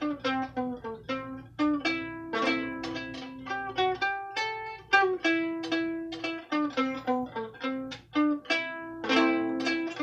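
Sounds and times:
plucked gittern melody: 0.0 - 10.0.

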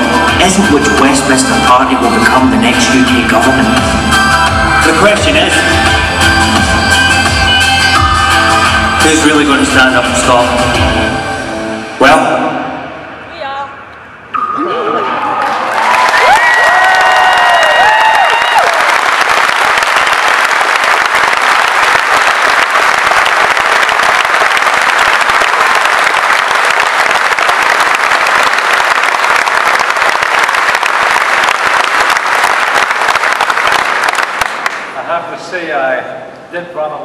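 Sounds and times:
voices whooping and cheering: 14.6 - 18.9
audience applauding: 15.1 - 35.0.

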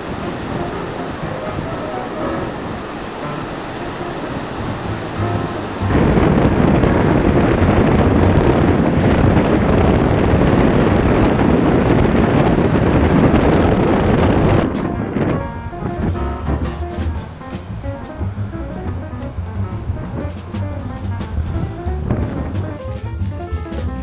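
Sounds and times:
ocean surf: 0.0 - 24.0
wind buffeting microphone: 0.0 - 24.0.

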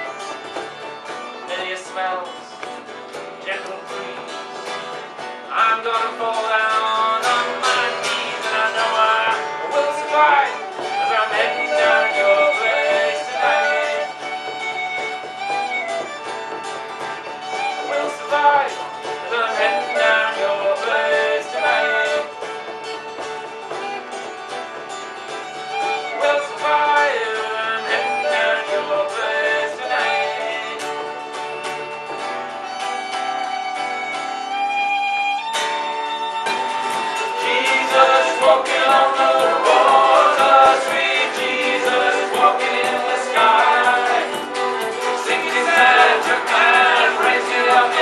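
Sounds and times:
acoustic guitar: 0.0 - 48.0
bowed string melody: 7.0 - 48.0.

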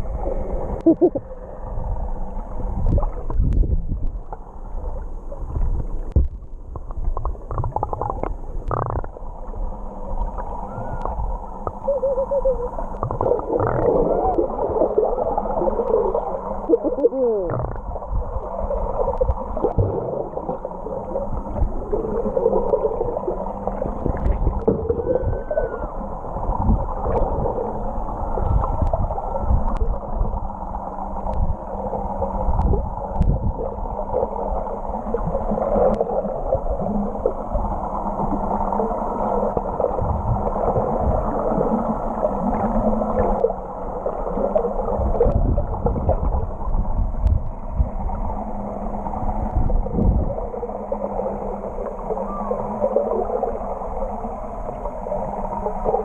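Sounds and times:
steady low hum: 0.0 - 56.0
water churning and gurgling: 0.0 - 56.0.

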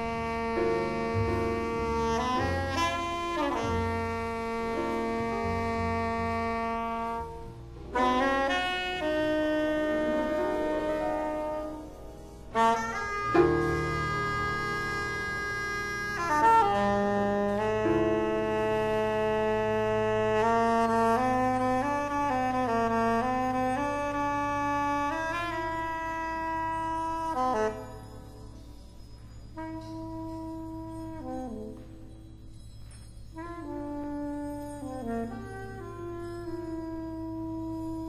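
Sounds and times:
soprano saxophone playing: 0.0 - 28.6, 29.5 - 32.3, 33.3 - 38.0
low drone: 9.0 - 16.3.

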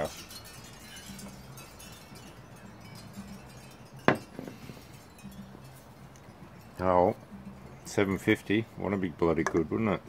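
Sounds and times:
glass mug knocking on table: 4.1 - 4.8.

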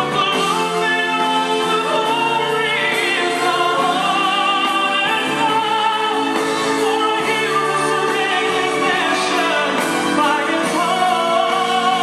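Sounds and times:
live band playing: 0.0 - 12.0.

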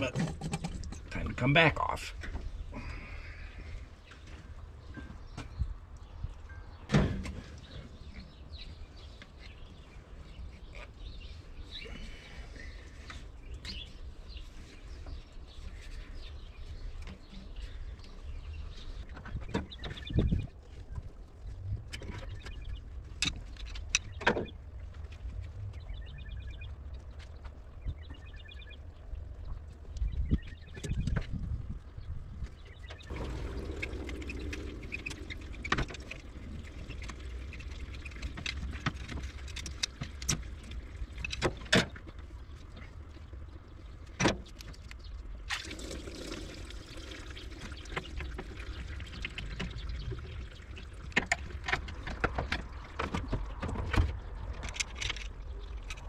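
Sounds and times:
steady low rumble: 24.7 - 41.3.

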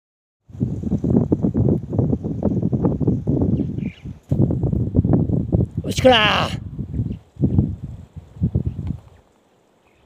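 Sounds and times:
wind buffeting microphone: 0.4 - 9.3.

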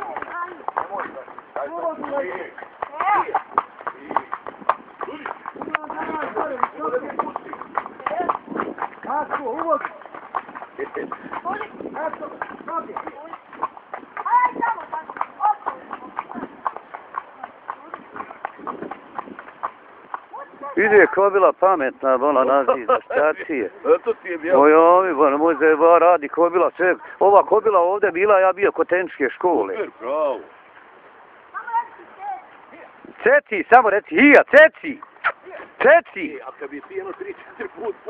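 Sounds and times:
hooves clip-clopping on pavement: 0.0 - 38.0.

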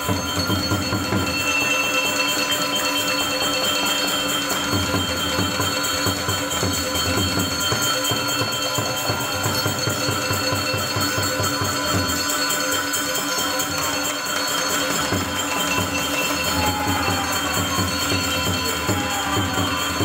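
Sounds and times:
metallophones ringing: 0.0 - 20.0.

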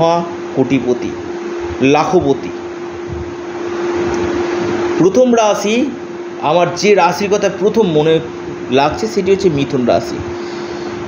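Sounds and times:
constant hum tone: 0.0 - 11.0.

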